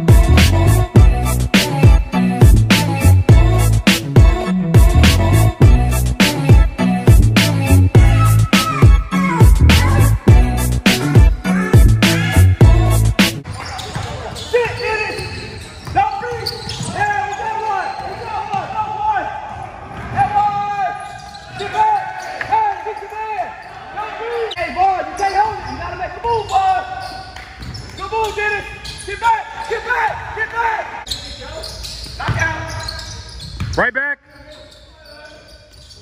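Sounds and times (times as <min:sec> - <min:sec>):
voices echoing in hall: 0:13.4 - 0:36.0.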